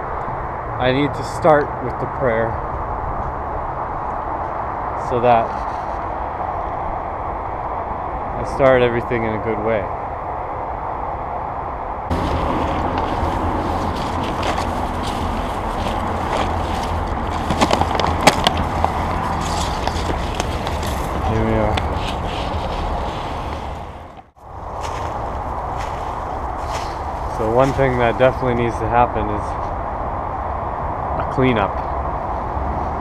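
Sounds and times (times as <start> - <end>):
steady rushing noise: 0.0 - 33.0.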